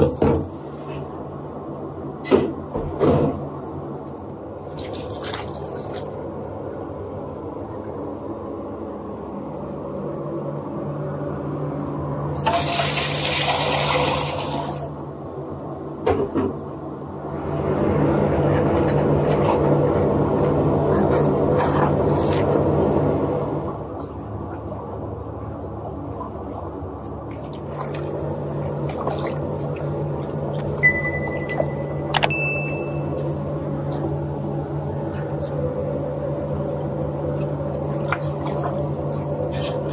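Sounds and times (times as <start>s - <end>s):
steady low hum: 0.0s - 12.4s, 14.6s - 39.9s
water pouring: 12.4s - 14.8s, 37.7s - 39.9s
water running into plastic pitcher: 12.4s - 14.9s.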